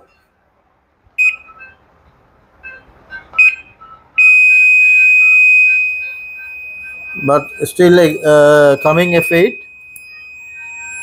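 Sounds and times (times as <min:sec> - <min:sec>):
washing machine beeps: 0:01.2 - 0:01.8, 0:03.4 - 0:11.0.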